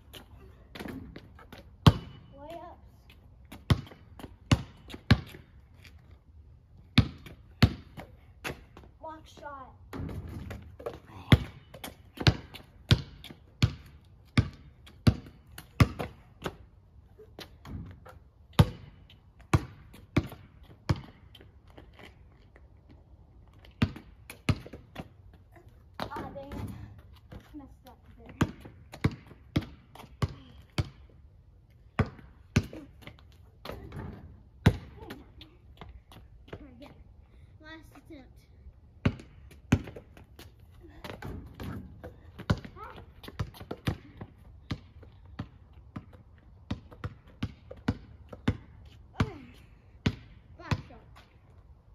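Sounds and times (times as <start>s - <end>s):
basketball bouncing on asphalt: 0.0s - 37.1s, 38.8s - 51.9s.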